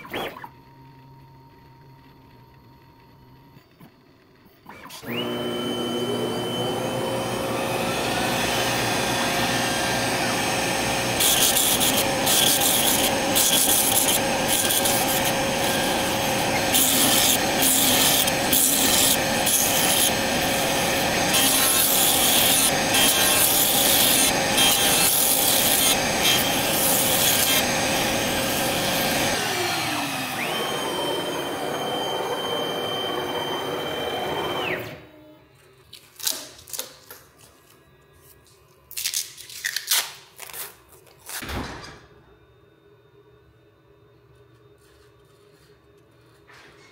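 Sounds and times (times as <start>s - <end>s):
router spindle whine: 0.0s - 35.5s
harsh cutting noise: 4.8s - 34.9s.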